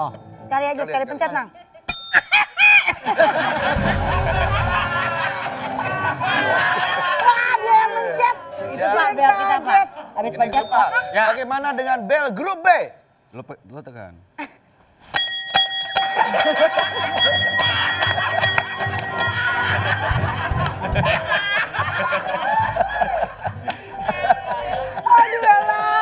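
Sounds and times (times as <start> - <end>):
people laughing: 1.4 - 10.5, 16.2 - 26.0
steady ringing tones: 10.4 - 12.0, 15.2 - 20.4
tap bell ding: 15.2 - 19.6.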